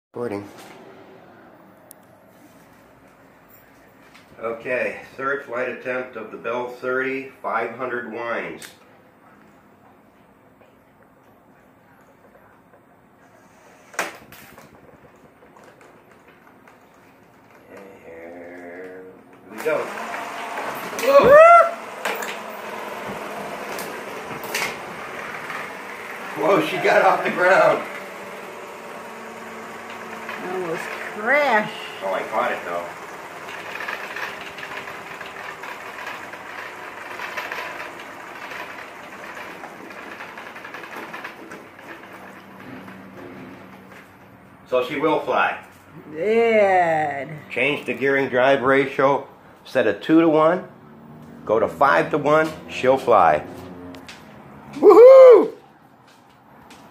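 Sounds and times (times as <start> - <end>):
model helicopter rotor whirring: 19.6 - 43.0.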